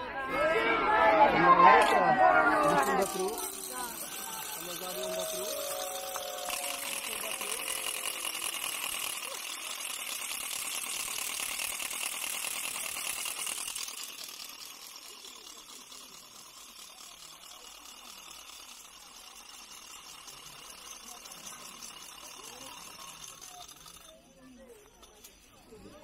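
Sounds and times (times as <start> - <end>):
indistinct voices outdoors: 0.0 - 26.0.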